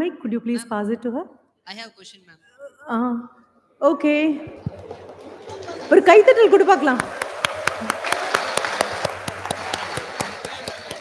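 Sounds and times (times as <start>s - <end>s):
person clapping hands: 6.9s - 11.0s.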